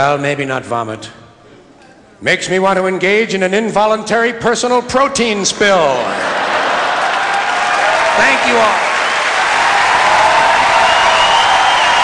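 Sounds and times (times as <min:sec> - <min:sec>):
audience applauding loudly: 0:06.0 - 0:12.0
audience cheering: 0:06.1 - 0:12.0.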